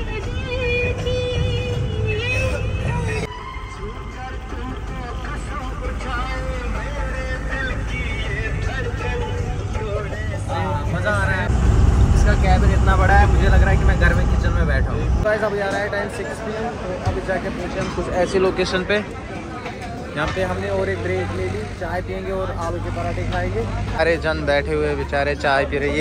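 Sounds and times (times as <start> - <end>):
old film song with singing: 0.0 - 11.6
bus engine and road rumble: 0.0 - 26.0.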